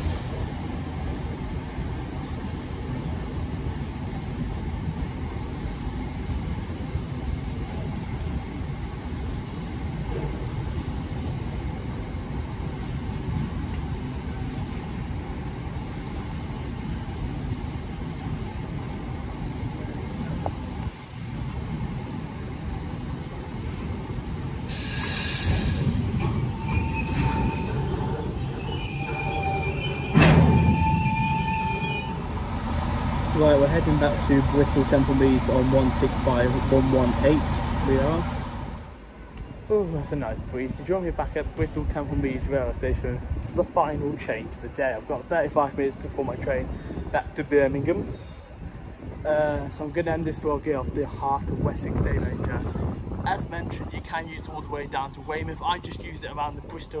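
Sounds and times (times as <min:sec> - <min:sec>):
train wheels rumbling on rails: 0:00.0 - 0:46.4
wheels squealing: 0:23.7 - 0:38.9
high screech: 0:24.7 - 0:32.9.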